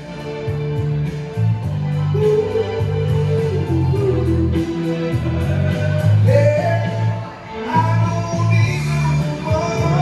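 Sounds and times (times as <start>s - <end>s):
bass line: 0.0s - 10.0s
man singing soul song: 2.0s - 10.0s.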